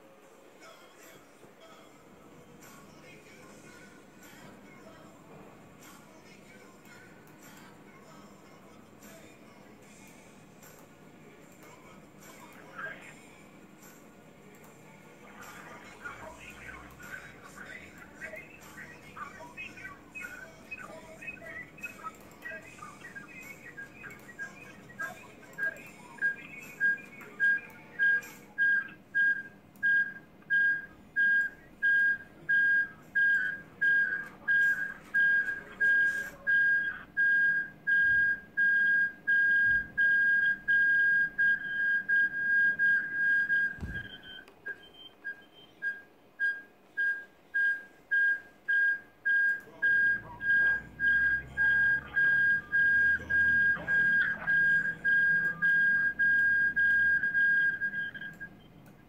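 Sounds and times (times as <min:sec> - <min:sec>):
electronic beeping: 0:15.6 - 0:58.8.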